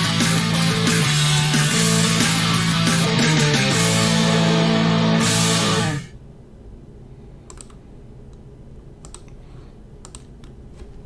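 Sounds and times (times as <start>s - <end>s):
faint low room hum: 6.0s - 11.0s
computer keyboard clicks: 7.5s - 7.8s, 9.0s - 9.4s, 10.0s - 10.6s.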